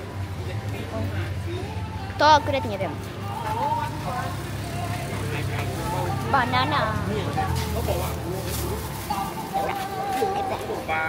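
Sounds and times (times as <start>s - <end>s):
faint voices: 0.0s - 11.0s
vehicle engine rumble: 0.0s - 11.0s.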